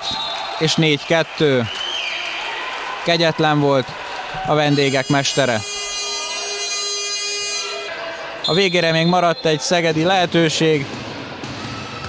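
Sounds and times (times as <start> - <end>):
electronic buzzer tone: 5.0 - 7.9.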